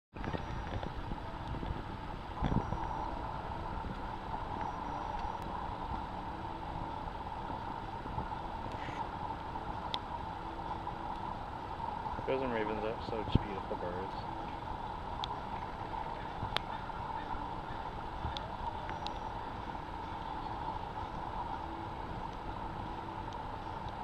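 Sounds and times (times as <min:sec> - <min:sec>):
vehicle engine running: 0:00.1 - 0:24.0.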